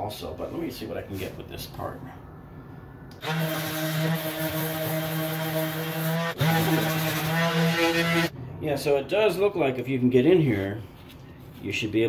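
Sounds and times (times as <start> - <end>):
orbital sander motor hum: 3.2 - 8.3.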